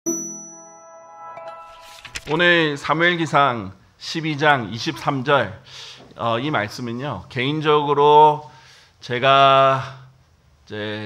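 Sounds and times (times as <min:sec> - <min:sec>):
bell-like ding ringing: 0:00.0 - 0:01.8.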